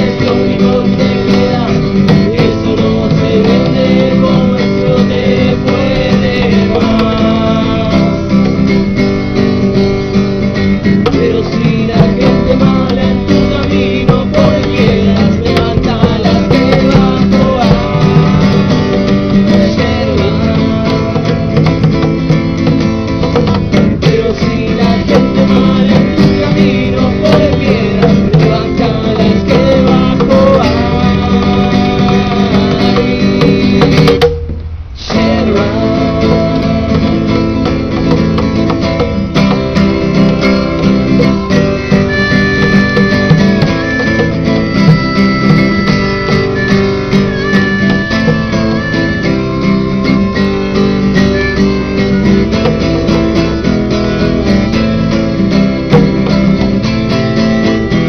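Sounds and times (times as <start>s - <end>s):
acoustic guitar strummed and picked: 0.0s - 58.0s
harmonica long notes: 14.1s - 21.6s, 39.9s - 58.0s.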